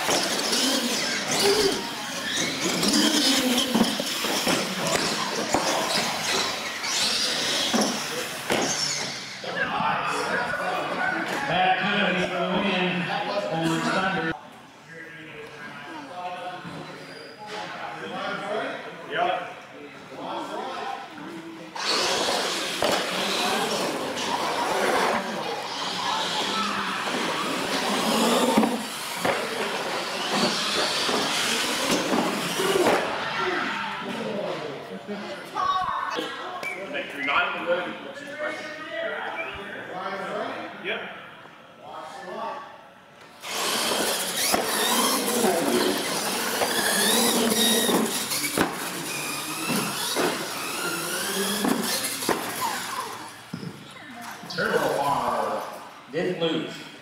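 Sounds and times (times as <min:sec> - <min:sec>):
toy trucks whining on concrete: 0:00.0 - 0:09.4, 0:21.8 - 0:33.3, 0:43.4 - 0:53.6
people talking in echoing hall: 0:00.0 - 0:57.0.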